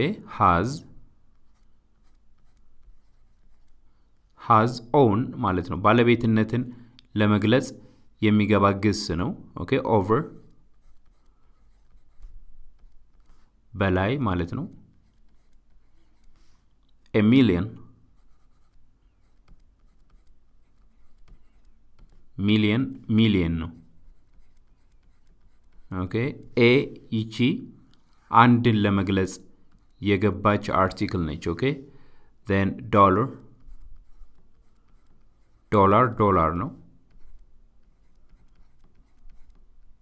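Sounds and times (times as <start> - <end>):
pen scratching while writing: 1.3 - 3.9, 10.3 - 13.6, 14.6 - 16.8, 18.1 - 22.4, 23.0 - 27.1, 27.9 - 28.3, 29.4 - 30.0, 33.3 - 40.0.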